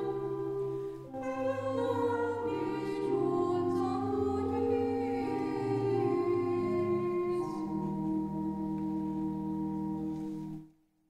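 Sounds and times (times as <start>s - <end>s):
church organ chords: 0.0s - 10.7s.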